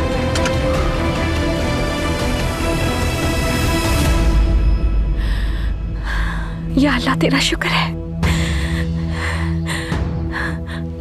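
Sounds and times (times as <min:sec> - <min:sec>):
soft dramatic music: 0:00.0 - 0:11.0
woman speaking: 0:06.7 - 0:08.0.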